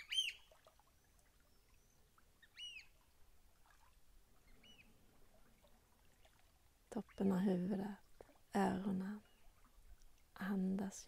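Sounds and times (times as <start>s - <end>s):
faint bird calls: 0.0s - 3.0s, 4.4s - 6.4s.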